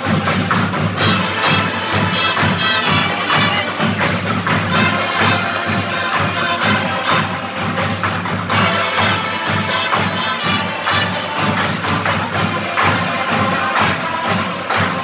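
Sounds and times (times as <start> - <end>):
marching band playing: 0.0 - 15.0.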